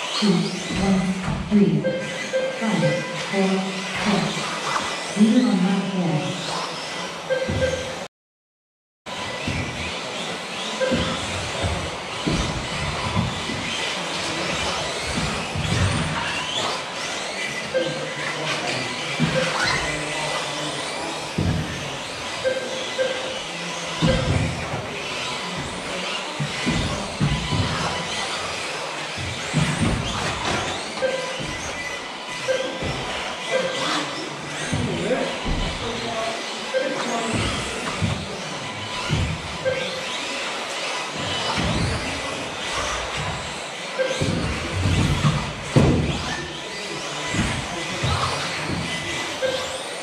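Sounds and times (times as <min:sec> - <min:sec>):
electric motor whines: 0:00.0 - 0:08.1, 0:09.1 - 0:50.0
rc cars thumping on track: 0:03.1 - 0:05.2, 0:06.4 - 0:08.1, 0:09.1 - 0:50.0.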